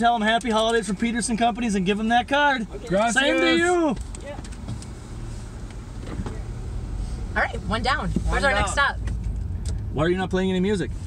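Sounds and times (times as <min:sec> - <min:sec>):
car engine and road rumble: 0:00.0 - 0:11.0.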